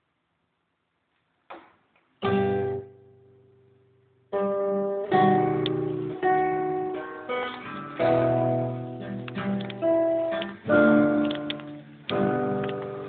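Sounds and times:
acoustic guitar strumming: 0:02.2 - 0:03.7, 0:04.3 - 0:13.0.

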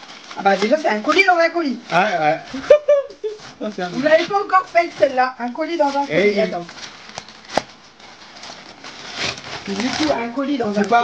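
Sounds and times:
plastic bag rustling: 0:00.0 - 0:11.0
scissors cutting plastic: 0:06.6 - 0:11.0.

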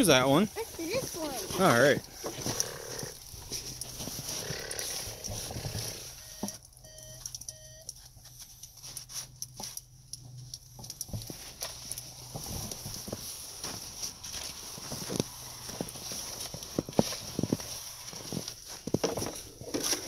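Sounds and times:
snow crunching and scraping: 0:00.0 - 0:06.4, 0:11.3 - 0:20.0.

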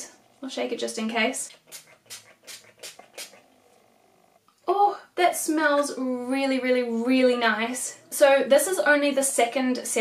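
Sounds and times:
spray bottle hissing: 0:01.6 - 0:03.4.

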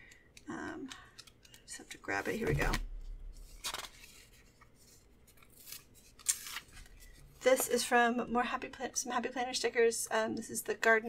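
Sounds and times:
paper rustling: 0:02.1 - 0:07.7.

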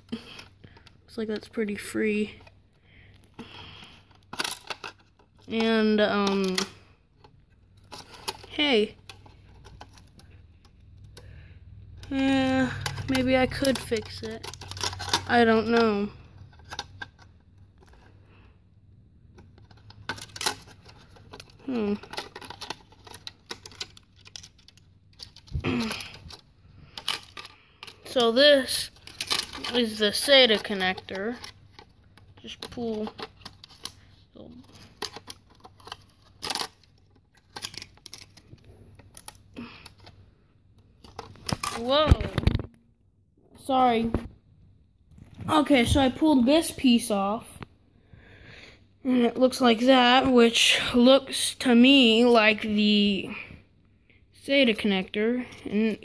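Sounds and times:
plastic parts clicking: 0:04.1 - 0:11.3, 0:12.0 - 0:18.1, 0:19.3 - 0:40.2, 0:40.8 - 0:42.7.

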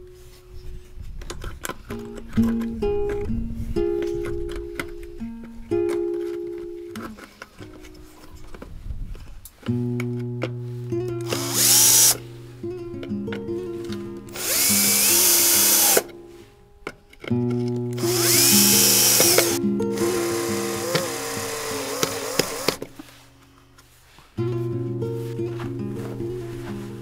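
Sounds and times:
background music: 0:09.7 - 0:23.5, 0:24.4 - 0:27.0
cordless drill whining: 0:11.3 - 0:12.2, 0:14.3 - 0:16.1, 0:18.0 - 0:22.9.

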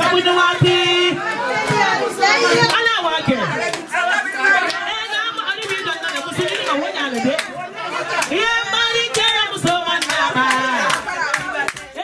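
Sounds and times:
people talking over one another: 0:00.0 - 0:12.0
children's voices: 0:01.1 - 0:02.8.

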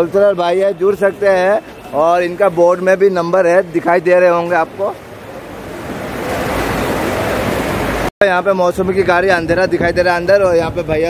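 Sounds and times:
wind buffeting microphone: 0:05.4 - 0:11.0.

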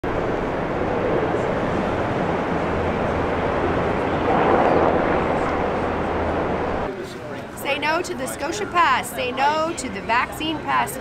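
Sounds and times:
city traffic rumble: 0:00.0 - 0:11.0.

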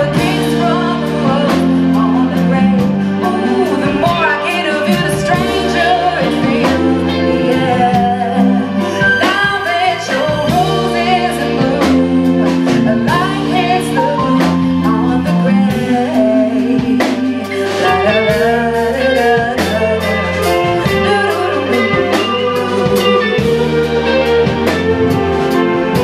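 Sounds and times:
woman singing pop ballad: 0:00.0 - 0:24.8
live band playing: 0:00.0 - 0:26.0.

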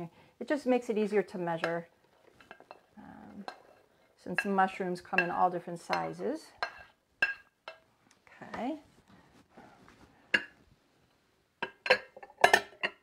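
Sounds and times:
dishes and utensils clinking: 0:01.6 - 0:07.9, 0:10.3 - 0:10.6, 0:11.6 - 0:13.0.

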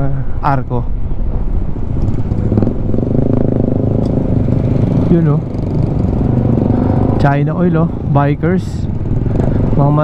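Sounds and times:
motorcycle engine hum: 0:00.3 - 0:10.0.

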